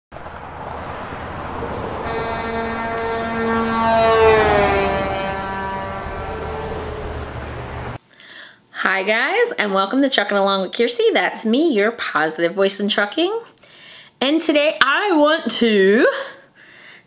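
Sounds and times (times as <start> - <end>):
steady low rumble: 0.1 - 8.0
vehicle driving past: 0.1 - 8.0
vehicle horn sounding: 2.0 - 8.0.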